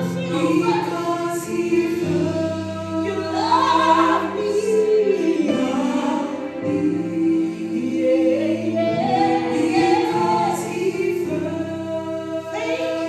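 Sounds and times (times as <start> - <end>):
sustained accompaniment chords: 0.0 - 13.0
woman singing gospel: 0.0 - 13.0.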